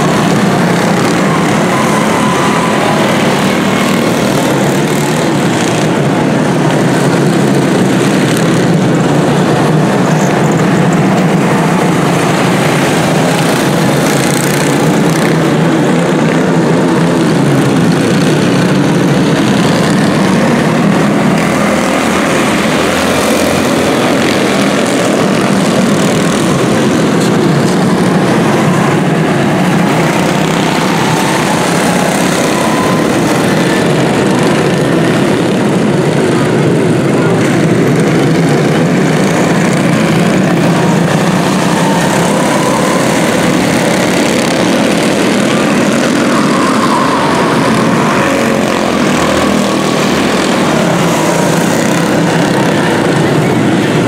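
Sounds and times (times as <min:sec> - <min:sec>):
race car engines buzzing drone: 0:00.0 - 0:54.0.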